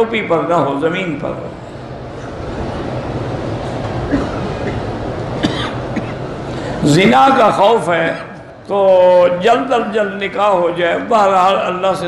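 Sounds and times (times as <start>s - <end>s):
man speaking into microphone: 0.0s - 1.6s, 6.8s - 12.0s
microphone hum and hiss: 0.0s - 12.0s.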